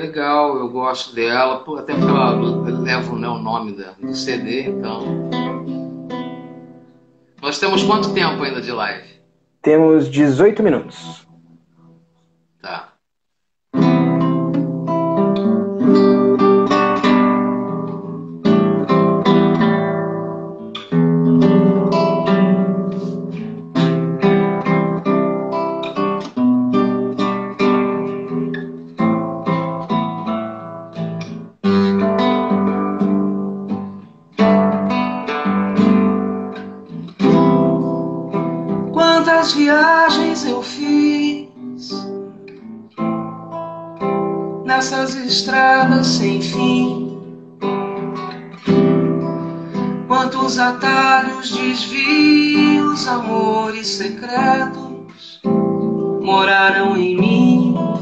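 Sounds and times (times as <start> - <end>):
acoustic guitar strumming: 1.9 - 12.0, 13.7 - 58.0.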